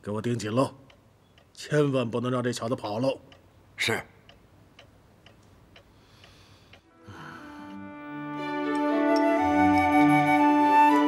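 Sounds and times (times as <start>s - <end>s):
clock ticking: 0.1s - 6.9s.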